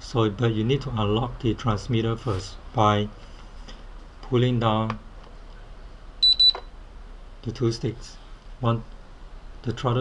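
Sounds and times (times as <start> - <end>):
high-pitched double beep: 6.2 - 6.6.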